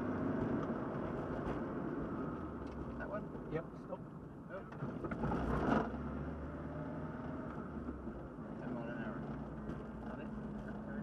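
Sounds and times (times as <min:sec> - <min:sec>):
road and tyre noise: 0:00.0 - 0:11.0.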